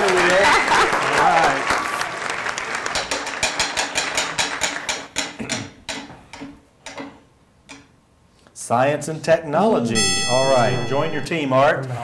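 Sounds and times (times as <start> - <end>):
people laughing: 0.0 - 1.6.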